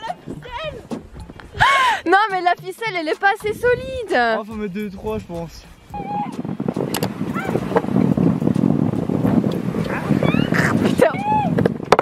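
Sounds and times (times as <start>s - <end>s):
voices calling out: 9.8s - 11.7s.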